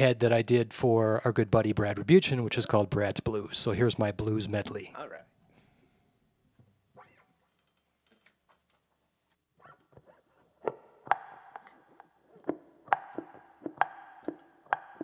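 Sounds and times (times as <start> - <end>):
electric guitar played percussively: 10.6 - 15.0.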